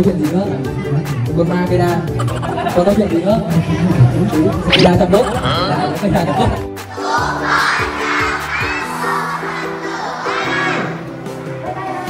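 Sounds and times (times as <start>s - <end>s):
children calling out in unison: 7.0s - 11.0s.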